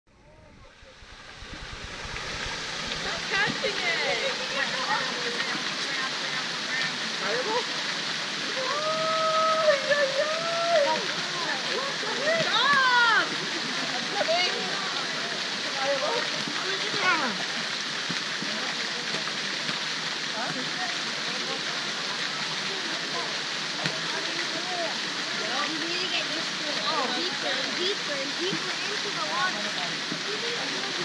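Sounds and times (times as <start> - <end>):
fountain water falling: 0.3 - 31.0
children calling and shouting: 8.5 - 13.4.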